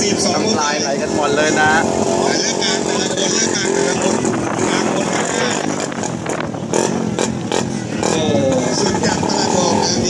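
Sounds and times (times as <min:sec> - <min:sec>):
motorcycle engines idling and revving: 0:00.0 - 0:10.0.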